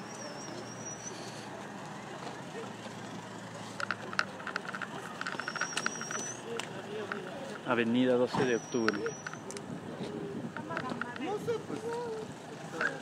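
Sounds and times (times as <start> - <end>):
traffic hum: 0.0 - 13.0.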